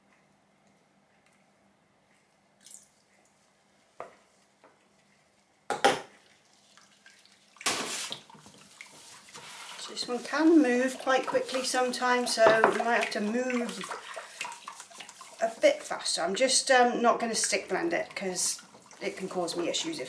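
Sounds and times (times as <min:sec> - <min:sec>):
whisk swishing in a plastic bucket: 0:07.8 - 0:20.0.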